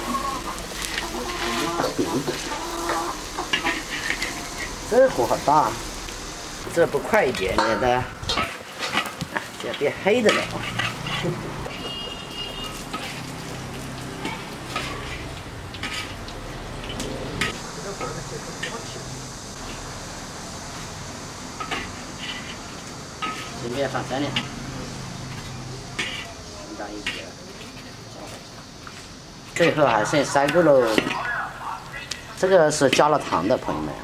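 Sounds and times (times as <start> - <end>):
chicken clucking: 0.0 - 3.8
metal spatula scraping a wok: 0.0 - 5.9, 7.4 - 19.0, 21.5 - 28.0
food sizzling in oil: 0.0 - 34.0.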